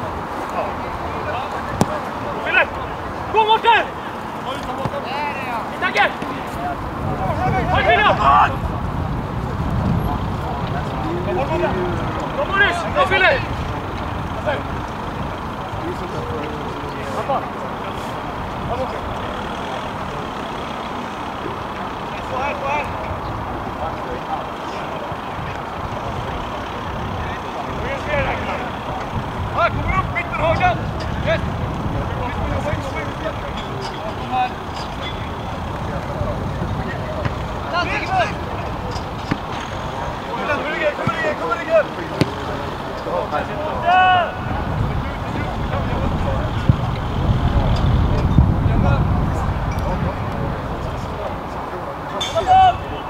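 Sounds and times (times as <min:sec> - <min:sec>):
players shouting: 0:00.0 - 0:53.0.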